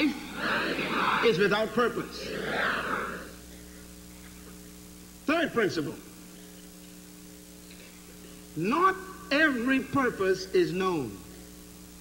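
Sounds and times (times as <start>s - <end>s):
voices: 0.0s - 3.5s
electrical mains hum: 0.0s - 12.0s.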